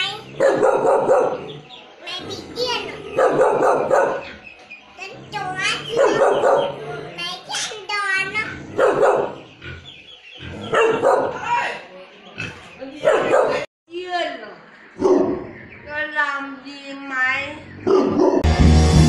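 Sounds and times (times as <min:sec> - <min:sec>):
dog barking: 0:00.3 - 0:01.5, 0:02.6 - 0:04.4, 0:05.6 - 0:06.9, 0:08.7 - 0:09.5, 0:10.7 - 0:11.4, 0:13.0 - 0:13.7, 0:15.0 - 0:15.5, 0:17.8 - 0:18.4.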